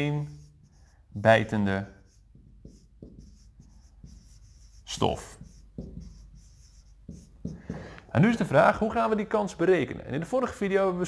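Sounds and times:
marker writing on whiteboard: 0.0s - 8.0s.

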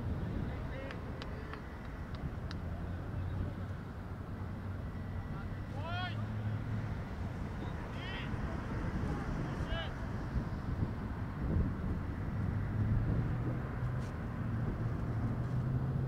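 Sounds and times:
wind rumbling on microphone: 0.0s - 5.0s, 6.7s - 16.0s
faint distant voices: 0.0s - 11.0s.

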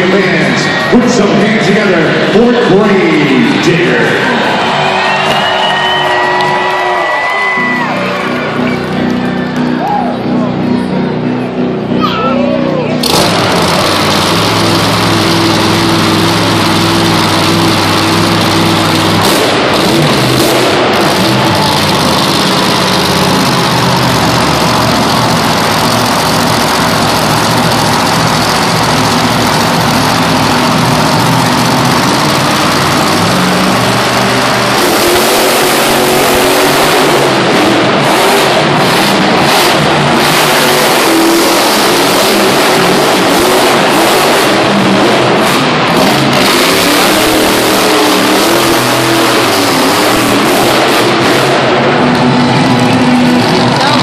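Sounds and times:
monster truck engines revving: 0.0s - 54.0s.

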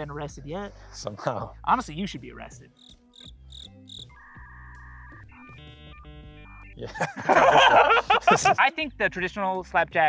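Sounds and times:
low background music: 0.0s - 10.0s
dial-up modem tones: 4.1s - 6.8s.

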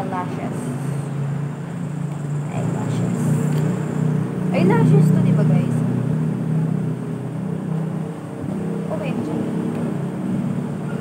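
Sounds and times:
engine drone: 0.0s - 11.0s.

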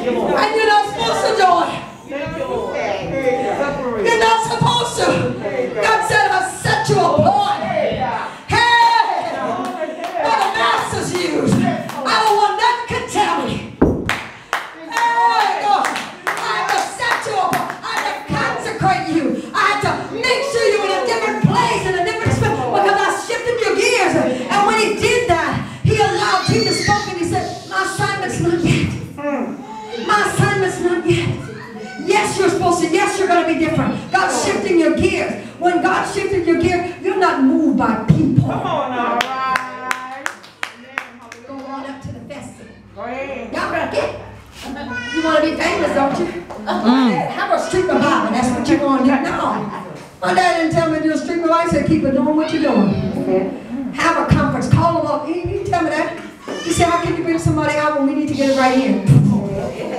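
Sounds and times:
hand clapping in even rhythm: 13.9s - 18.2s, 39.2s - 41.8s
hand clapping: 14.0s - 16.5s.

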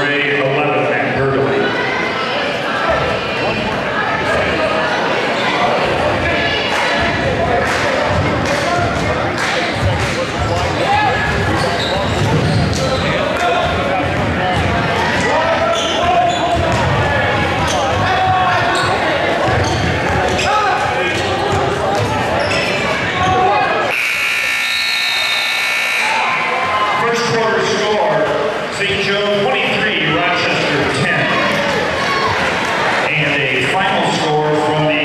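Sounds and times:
crowd voices in a gym: 0.0s - 35.0s
scoreboard buzzer: 23.9s - 26.4s.

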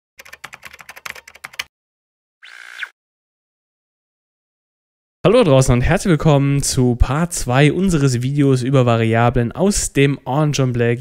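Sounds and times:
keyboard typing: 0.2s - 1.7s.

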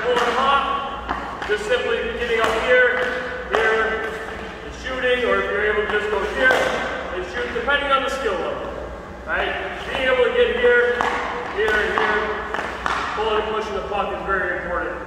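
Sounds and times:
hockey stick clacking puck: 0.0s - 7.6s, 9.8s - 13.7s.

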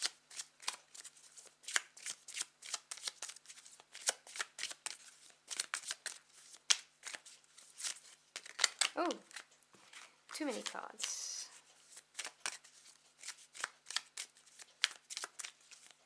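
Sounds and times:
cards being shuffled: 0.0s - 16.0s.

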